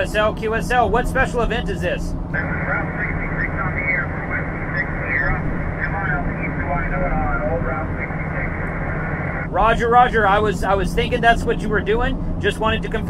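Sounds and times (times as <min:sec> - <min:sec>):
truck road and engine rumble: 0:00.0 - 0:13.0
voice over radio speaker: 0:00.0 - 0:13.0.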